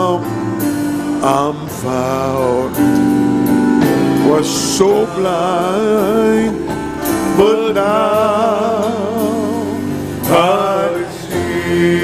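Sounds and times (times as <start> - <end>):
worship band music: 0.0 - 12.0
person singing: 1.2 - 3.1, 4.2 - 12.0.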